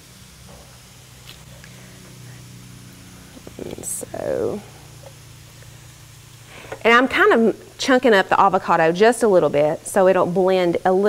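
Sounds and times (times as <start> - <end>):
low steady hum: 0.0 - 11.0
woman speaking: 3.4 - 4.8, 6.8 - 11.0.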